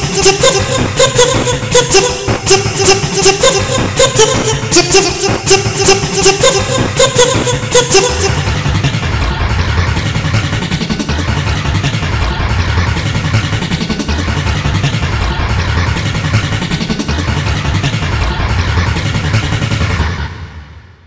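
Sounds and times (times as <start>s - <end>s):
dense overlapping audio clips: 0.0s - 20.4s.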